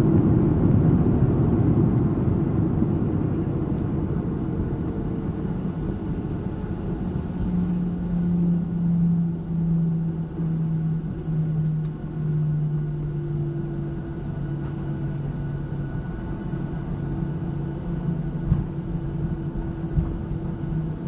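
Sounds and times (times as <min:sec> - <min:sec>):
jet engine drone in cabin: 0:00.0 - 0:21.0.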